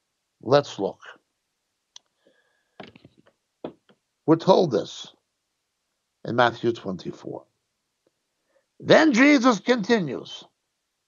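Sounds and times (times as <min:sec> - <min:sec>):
faint sharp clicks: 0:01.9 - 0:02.1.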